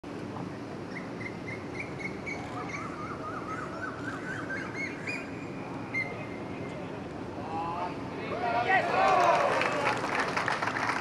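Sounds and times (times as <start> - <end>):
low outdoor background noise: 0.0 - 11.0
birds chirping: 0.5 - 6.9.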